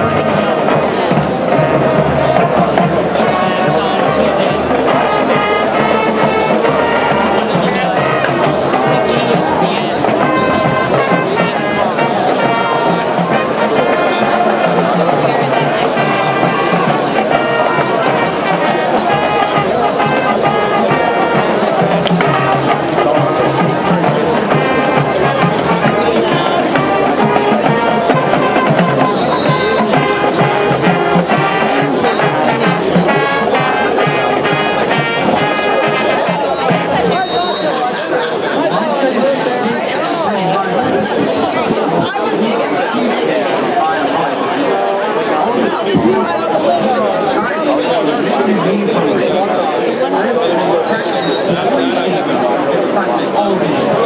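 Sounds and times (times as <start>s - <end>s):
marching band playing: 0.0s - 38.2s
people chattering: 0.0s - 54.0s.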